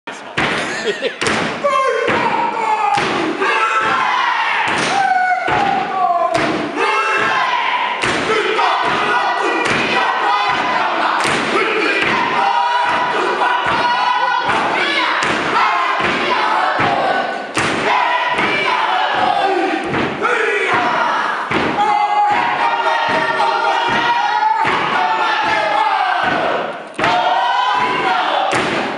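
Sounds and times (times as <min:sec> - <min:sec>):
group chanting in unison: 0:01.3 - 0:28.9.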